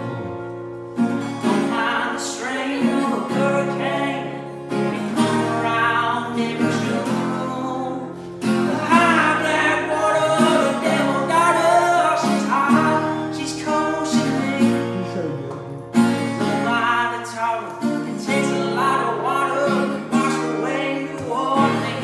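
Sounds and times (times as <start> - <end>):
acoustic guitar strumming: 0.0 - 22.0
man singing: 1.4 - 15.8, 16.4 - 22.0.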